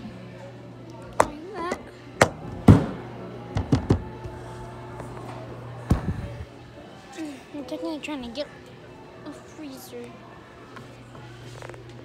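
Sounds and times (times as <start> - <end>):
knocks on hollow metal freezer: 2.2 - 3.0.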